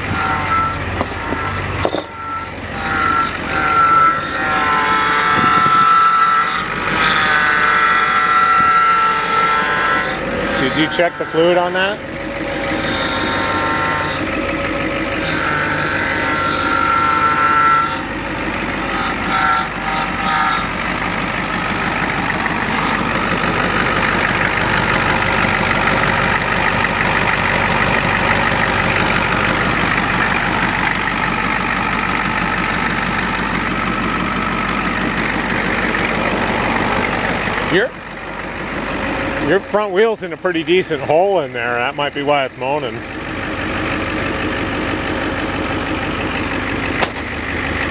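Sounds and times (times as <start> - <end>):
bus engine running with moaning note: 0.0 - 47.9.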